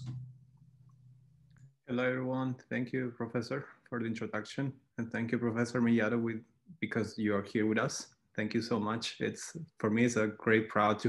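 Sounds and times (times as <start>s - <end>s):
faint low hum: 0.0s - 0.3s.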